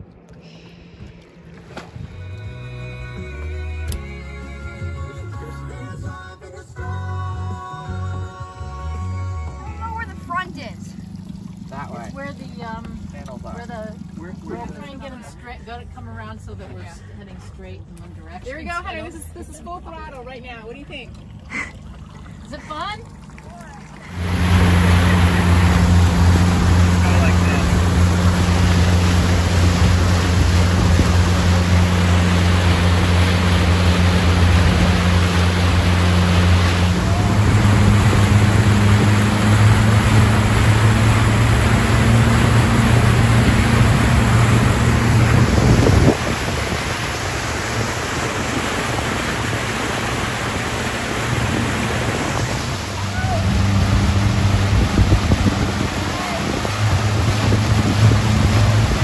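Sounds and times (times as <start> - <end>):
churning wake water: 0.0 - 59.0
outboard motor droning: 0.0 - 59.0
wind: 0.0 - 59.0.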